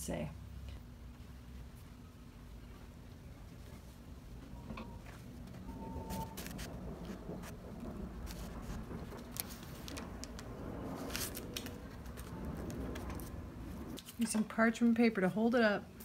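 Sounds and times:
low steady hum: 0:00.0 - 0:16.0
paper rustle: 0:06.0 - 0:07.6, 0:08.2 - 0:14.4.

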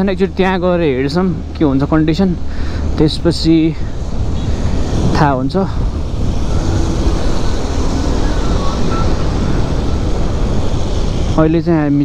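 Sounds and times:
motorcycle road noise on wet road: 0:00.0 - 0:12.0
wind on microphone: 0:03.3 - 0:11.9.

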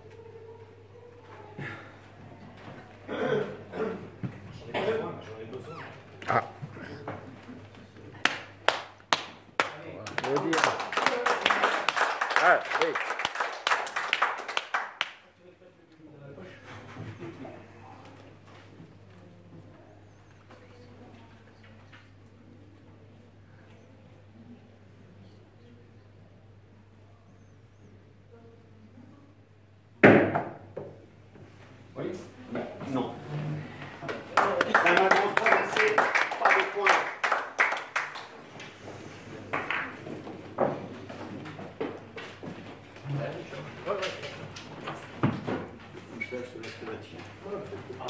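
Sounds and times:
audience applauding: 0:08.2 - 0:15.2, 0:34.0 - 0:38.8, 0:39.4 - 0:40.1.

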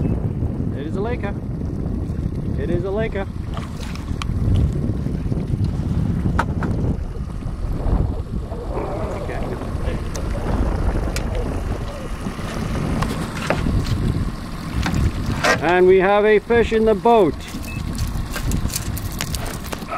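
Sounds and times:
wind on microphone: 0:00.0 - 0:19.9.

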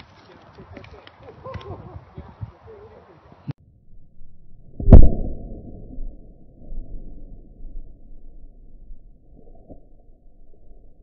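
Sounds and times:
faint voices and laughter: 0:00.3 - 0:03.1.

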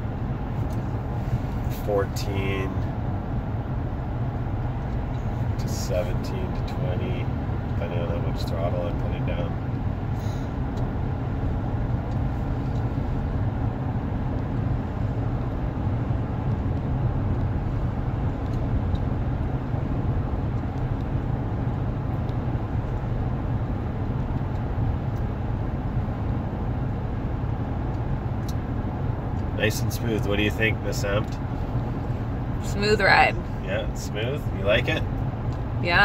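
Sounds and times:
road and engine drone in cab: 0:00.0 - 0:36.0.

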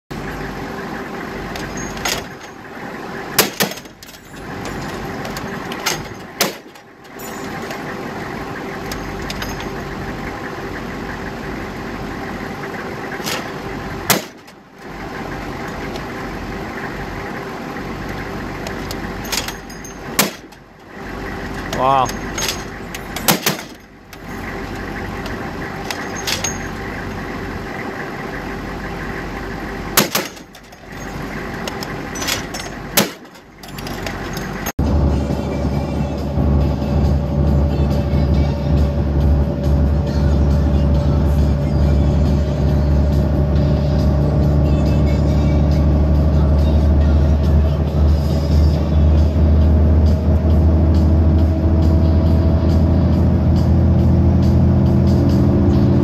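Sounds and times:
diesel engine running: 0:00.0 - 0:56.0
knocks and rattles: 0:01.5 - 0:02.7, 0:03.3 - 0:08.0, 0:08.8 - 0:10.1, 0:18.1 - 0:20.7, 0:21.5 - 0:27.0, 0:30.0 - 0:34.8.

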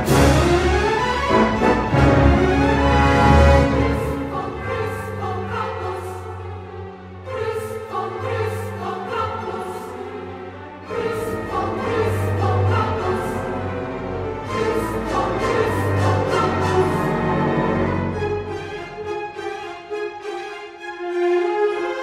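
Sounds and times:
choir singing: 0:00.0 - 0:22.0
orchestral music: 0:00.0 - 0:22.0.

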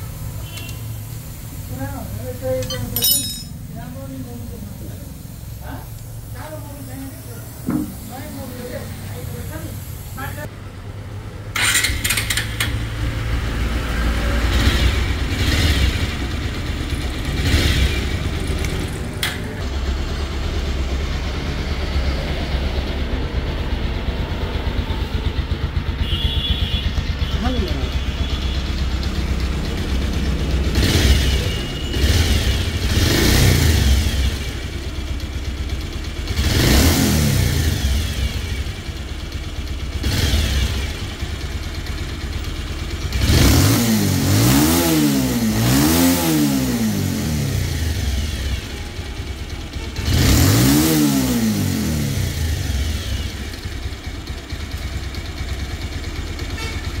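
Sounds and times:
motorcycle engine idling and revving: 0:00.0 - 0:57.0.

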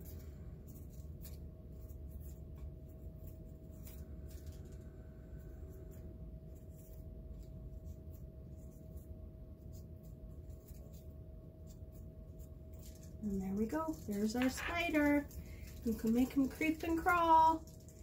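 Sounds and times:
low room hum: 0:00.0 - 0:18.0
paper strips crinkling: 0:00.0 - 0:18.0.

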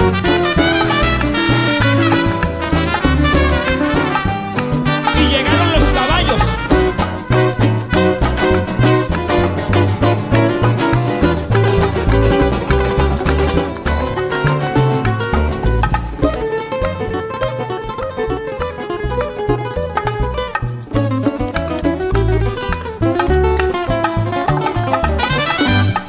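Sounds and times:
hand percussion: 0:00.0 - 0:26.0
plucked string lead: 0:00.0 - 0:26.0
upright bass line: 0:00.0 - 0:26.0.

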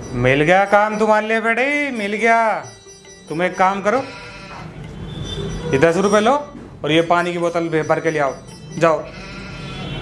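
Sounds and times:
faint background music: 0:00.0 - 0:10.0
man speaking: 0:00.2 - 0:04.2, 0:05.7 - 0:09.2.

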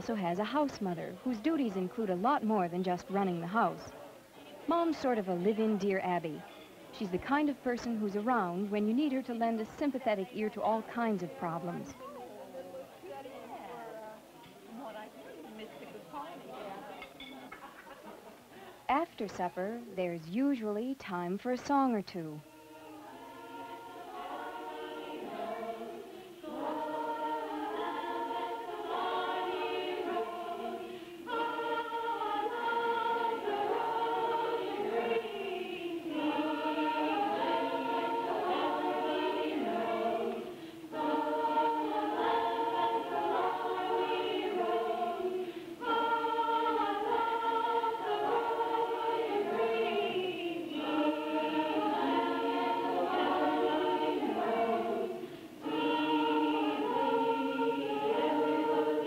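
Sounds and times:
group singing in chorus: 0:22.4 - 0:59.0.

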